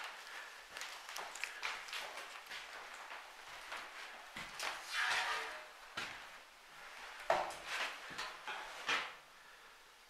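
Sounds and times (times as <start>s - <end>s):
footsteps scuffing on floor: 5.9s - 9.1s.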